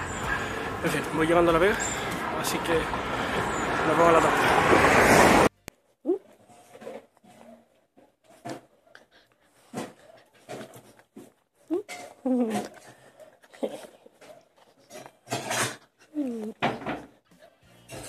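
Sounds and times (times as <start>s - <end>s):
small dog play sounds: 6.1s - 18.0s
music: 17.4s - 18.0s.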